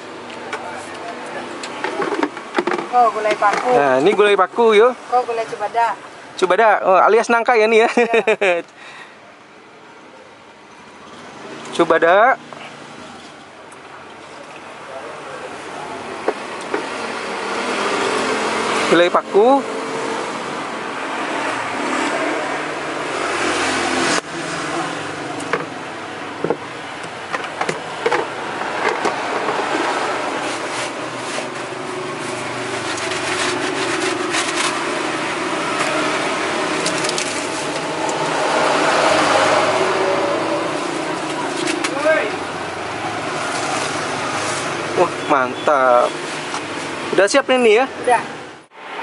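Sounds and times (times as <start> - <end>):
street traffic: 0.0 - 49.0.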